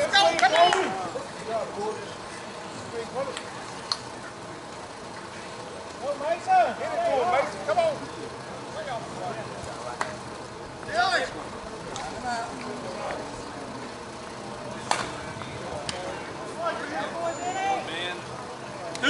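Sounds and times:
distant players calling out: 0:00.0 - 0:19.0.

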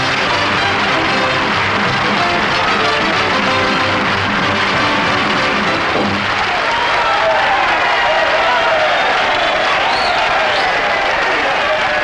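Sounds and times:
band music: 0:00.0 - 0:06.6
audience applauding: 0:00.0 - 0:12.0
voices in applause: 0:00.0 - 0:12.0.

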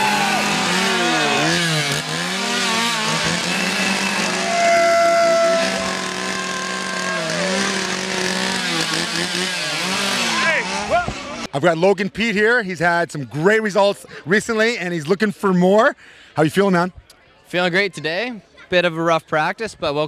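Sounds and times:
people yelling: 0:00.0 - 0:01.9, 0:03.1 - 0:09.0, 0:10.1 - 0:11.2
chainsaws revving: 0:00.0 - 0:11.5.

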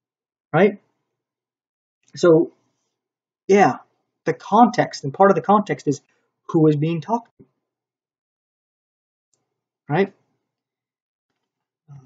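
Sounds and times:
man speaking: 0:00.6 - 0:00.8, 0:02.2 - 0:02.5, 0:03.5 - 0:07.3.

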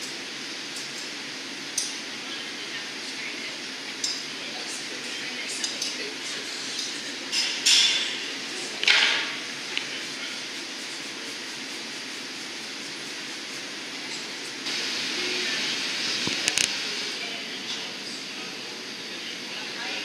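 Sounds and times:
gas burners roaring: 0:00.0 - 0:20.0.

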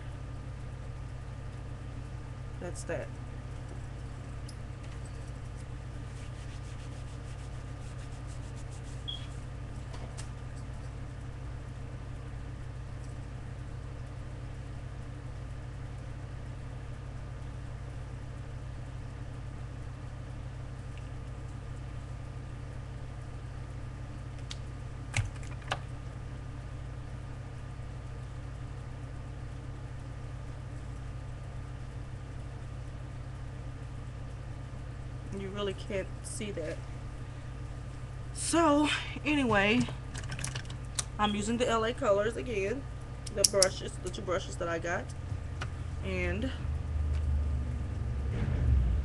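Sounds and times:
low background hum: 0:00.0 - 0:49.0.

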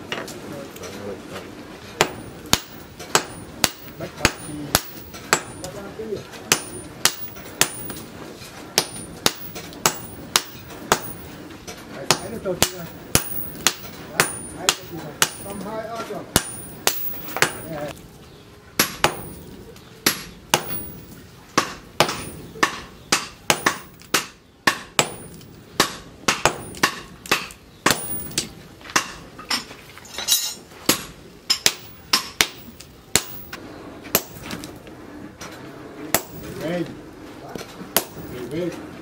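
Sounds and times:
hammer striking hot steel on anvil: 0:02.0 - 0:05.9, 0:06.5 - 0:11.5, 0:12.1 - 0:17.9, 0:18.8 - 0:34.7, 0:36.1 - 0:36.6, 0:37.9 - 0:38.5.

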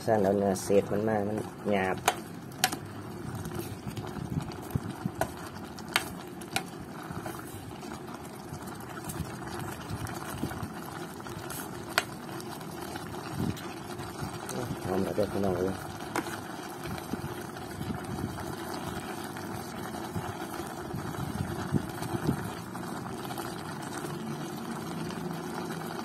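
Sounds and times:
stew bubbling: 0:00.0 - 0:26.0.

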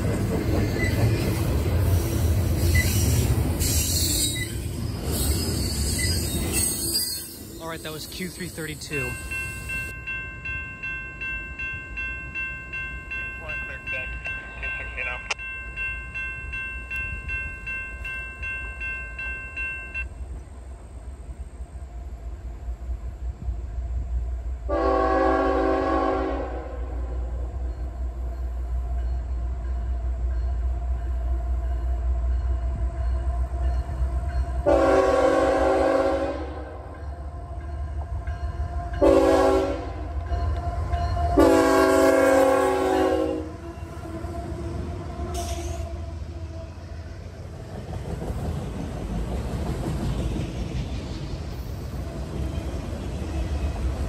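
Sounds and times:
ringing tone with ticks: 0:09.1 - 0:20.2, 0:40.2 - 0:41.2
train air horn blasts: 0:24.7 - 0:27.2, 0:34.6 - 0:36.9, 0:38.8 - 0:40.2, 0:41.3 - 0:46.8.

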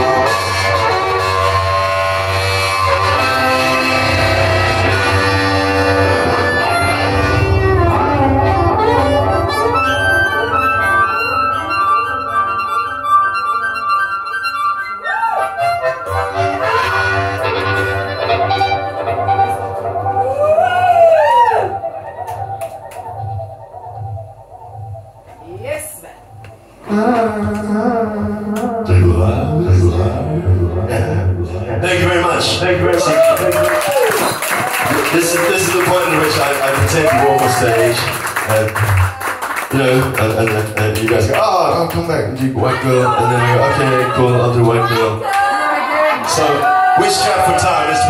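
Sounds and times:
harmonica solo: 0:00.0 - 0:25.3.

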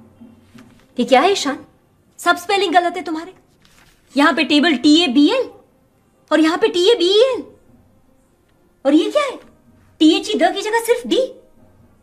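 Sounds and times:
woman speaking: 0:01.0 - 0:03.4, 0:04.1 - 0:05.6, 0:06.3 - 0:07.6, 0:08.8 - 0:11.4.

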